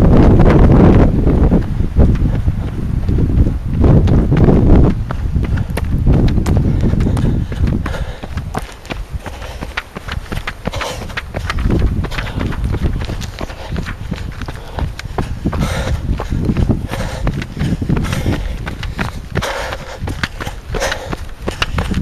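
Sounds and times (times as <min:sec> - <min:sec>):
running footsteps on dirt: 0:00.0 - 0:22.0.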